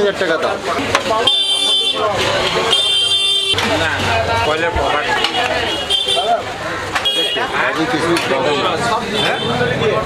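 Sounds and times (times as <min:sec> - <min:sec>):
vehicle horn blasts: 0:01.2 - 0:03.6.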